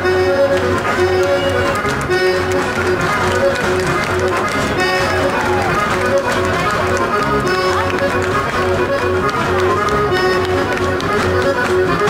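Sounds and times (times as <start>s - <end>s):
accordion folk dance tune: 0.0s - 12.0s
feet tapping on stage: 0.2s - 12.0s.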